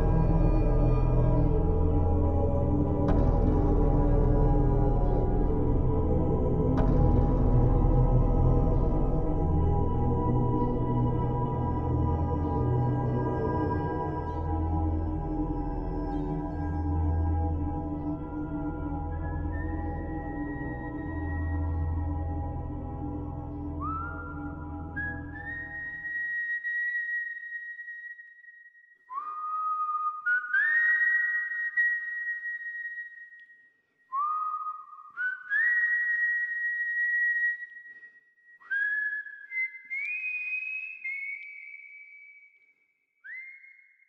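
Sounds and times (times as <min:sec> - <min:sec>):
low musical accompaniment: 0:00.0 - 0:25.7
person whistling a tune: 0:23.8 - 0:44.0.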